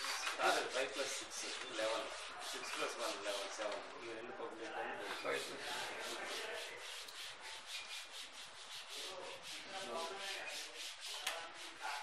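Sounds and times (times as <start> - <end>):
duster rubbing chalkboard: 0.0 - 3.8, 5.0 - 12.0.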